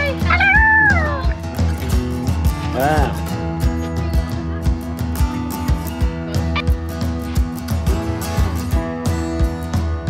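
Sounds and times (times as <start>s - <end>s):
background music with steady beat: 0.0s - 10.0s
child squealing: 0.3s - 1.2s.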